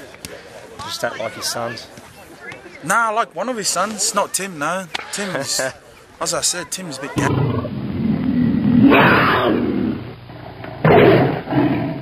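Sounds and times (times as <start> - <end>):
big cat growling: 7.2 - 12.0
big cat roar: 7.2 - 12.0.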